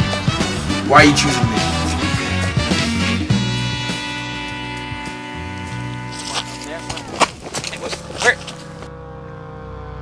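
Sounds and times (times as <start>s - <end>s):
held music drone: 0.1s - 7.1s
loud vocal outbursts: 0.6s - 2.9s.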